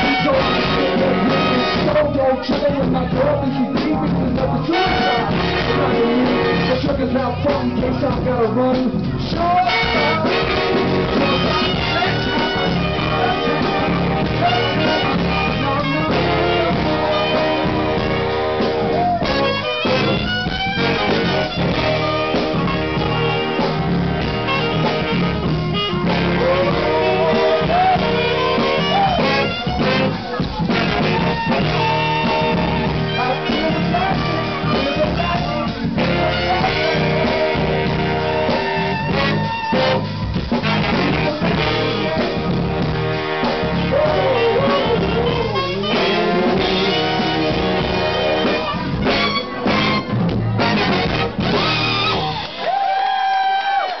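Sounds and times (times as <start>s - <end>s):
horn section: 0.0s - 54.0s
live funk band playing: 0.0s - 54.0s.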